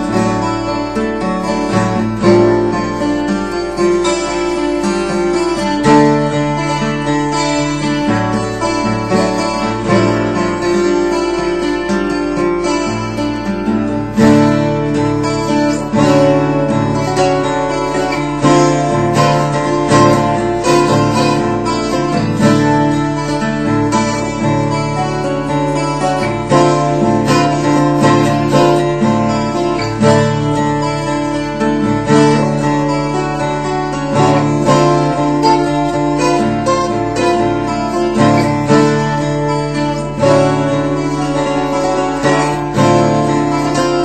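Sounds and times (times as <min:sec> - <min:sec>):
acoustic guitar arpeggios: 0:00.0 - 0:44.0.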